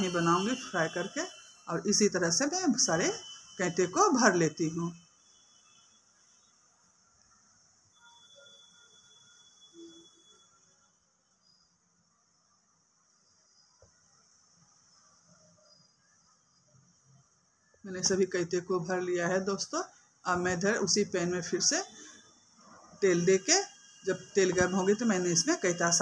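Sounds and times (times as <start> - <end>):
faint high-pitched hiss: 0.0 - 26.0.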